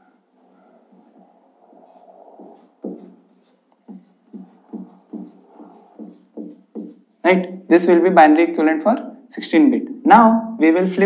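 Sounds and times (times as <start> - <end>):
marker pen writing on whiteboard: 0.0 - 7.5.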